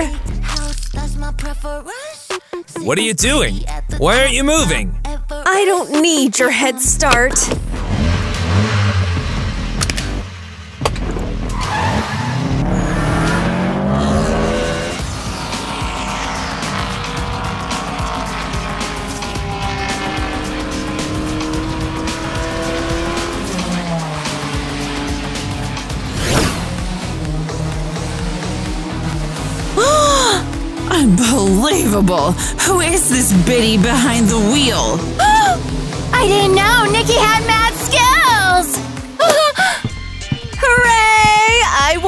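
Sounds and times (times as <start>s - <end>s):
sports car engines accelerating: 6.8s - 42.0s.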